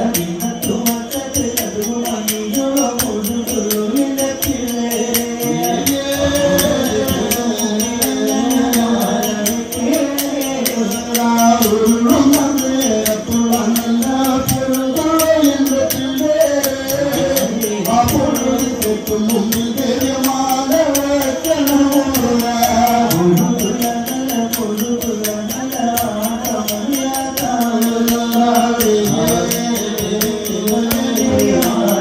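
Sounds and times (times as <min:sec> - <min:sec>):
person chanting: 0:00.0 - 0:32.0
person singing slow melody: 0:00.0 - 0:32.0
sharp percussive strikes: 0:00.0 - 0:32.0
small hand cymbals beating: 0:00.0 - 0:32.0.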